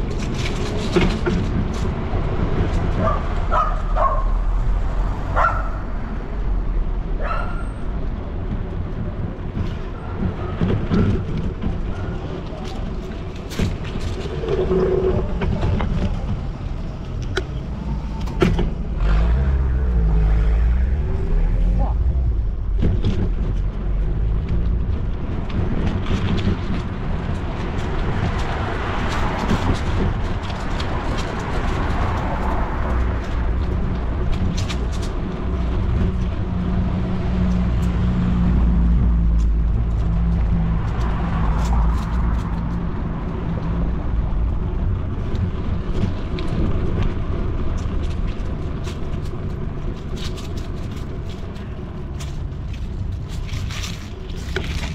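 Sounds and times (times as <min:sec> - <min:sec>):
steady low rumble: 0:00.0 - 0:10.1, 0:11.2 - 0:54.9
cars passing: 0:00.0 - 0:54.9.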